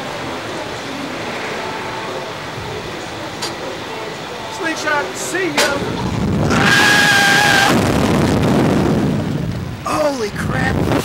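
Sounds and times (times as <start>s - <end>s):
steady high note: 0.0s - 6.0s
wind rushing over microphone: 0.0s - 11.0s.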